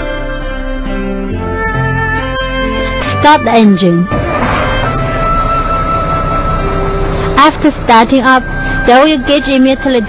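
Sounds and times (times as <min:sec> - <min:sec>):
background music with held notes: 0:00.0 - 0:10.0
diesel truck engine rumbling: 0:00.0 - 0:10.0.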